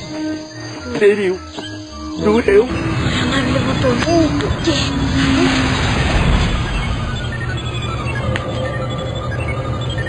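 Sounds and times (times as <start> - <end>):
spaceship rumbling: 2.2 - 10.0.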